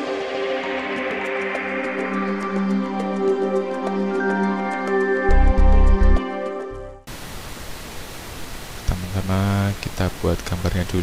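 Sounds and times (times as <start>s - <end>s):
microphone hiss: 7.1s - 11.0s.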